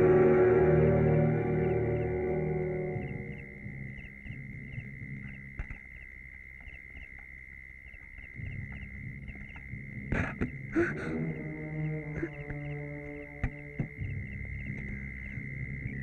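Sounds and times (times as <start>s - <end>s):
high drone with repeating chirps: 0.0s - 16.0s
low hum: 0.0s - 16.0s
suspense film score: 0.0s - 16.0s.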